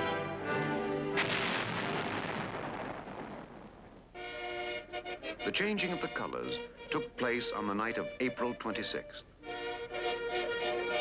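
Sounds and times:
orchestral music: 0.0 - 1.2, 4.2 - 11.0
field gun blast: 1.1 - 4.1.

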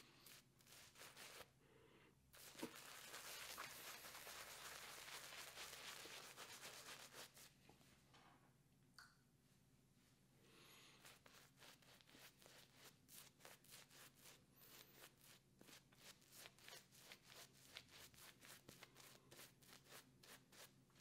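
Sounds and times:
shaving brush strokes on stubble: 0.0 - 1.5, 2.4 - 7.5, 11.0 - 20.7.

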